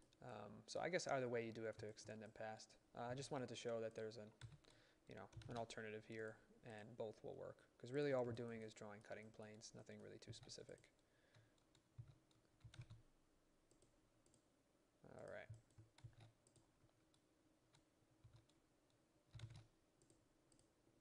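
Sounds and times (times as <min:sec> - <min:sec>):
computer mouse clicks: 0:10.3 - 0:13.0, 0:13.7 - 0:14.4, 0:15.5 - 0:20.7.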